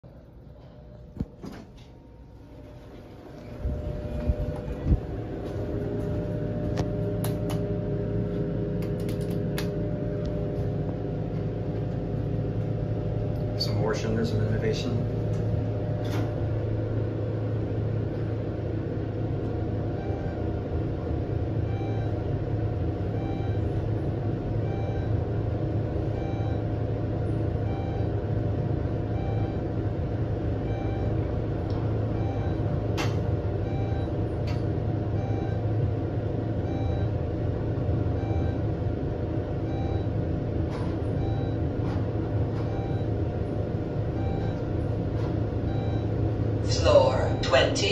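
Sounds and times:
elevator hum and rumble: 0:00.0 - 0:47.9
sharp clicks: 0:08.8 - 0:09.8.

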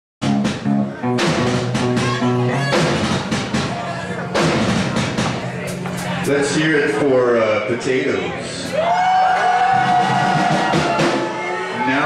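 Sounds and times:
live rock band playing: 0:00.2 - 0:07.6, 0:09.5 - 0:11.7.

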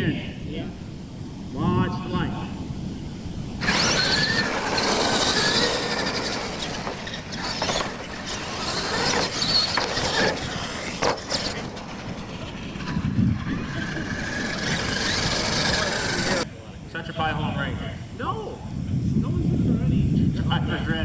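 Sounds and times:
toy truck motors whining: 0:03.6 - 0:16.5.

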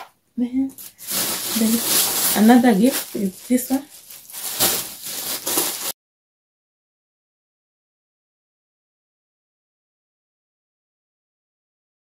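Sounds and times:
plastic bag rustling: 0:00.7 - 0:06.0.

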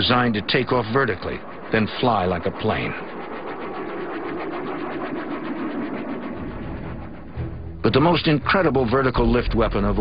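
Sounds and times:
pulsing rotor drone: 0:00.0 - 0:10.0
low rumble: 0:05.6 - 0:10.0.

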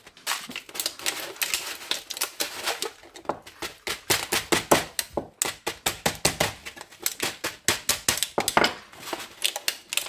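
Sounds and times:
metal foil crackling: 0:00.0 - 0:05.6, 0:06.6 - 0:10.0.

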